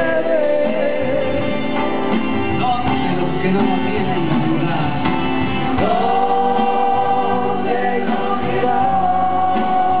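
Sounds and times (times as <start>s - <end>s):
acoustic guitars: 0.0s - 10.0s
men singing: 0.0s - 10.0s.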